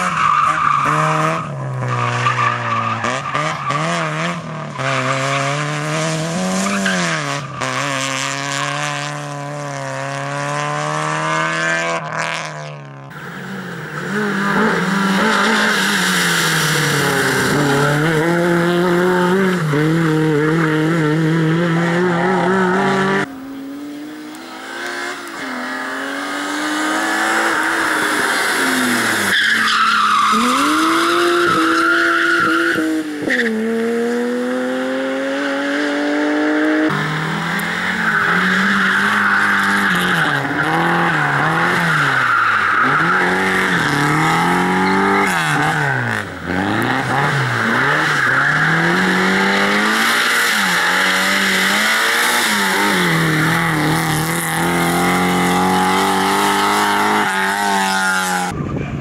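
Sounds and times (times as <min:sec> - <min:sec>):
tyres skidding and squealing: 0:00.0 - 0:10.0, 0:11.0 - 0:34.3, 0:35.0 - 0:59.0
rally car engine revving: 0:00.0 - 0:58.6.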